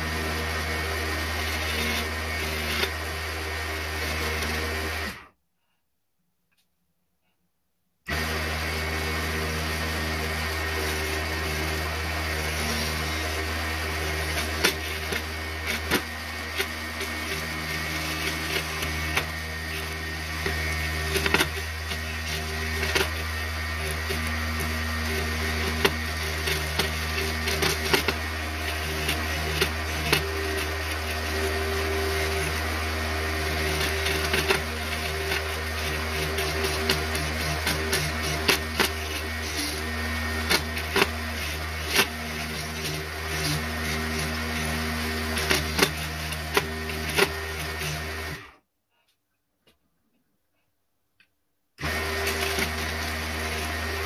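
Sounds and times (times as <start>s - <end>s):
chisel scraping spinning wood: 0.0s - 5.2s, 8.1s - 48.5s
lathe motor hum: 0.0s - 5.2s, 8.1s - 48.5s, 51.8s - 54.0s.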